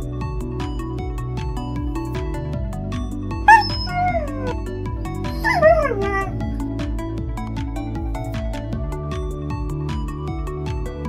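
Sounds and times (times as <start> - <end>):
music with steady beat: 0.0 - 11.0
falling animal-like cries: 3.5 - 4.6, 5.4 - 6.4.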